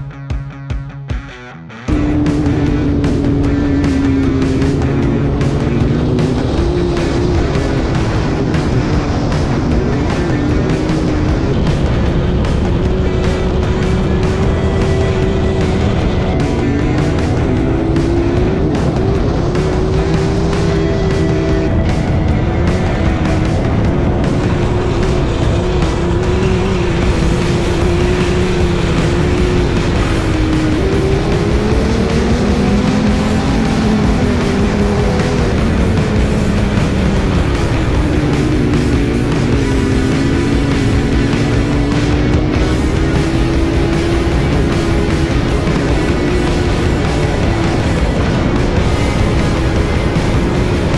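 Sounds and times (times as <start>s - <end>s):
background music: 0.0s - 50.9s
sandrail engine running: 1.9s - 50.9s.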